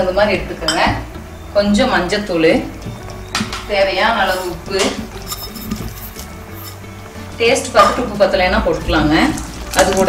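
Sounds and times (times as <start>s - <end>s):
person speaking: 4.3s - 5.0s
steel utensils clinking on pan: 4.3s - 6.8s.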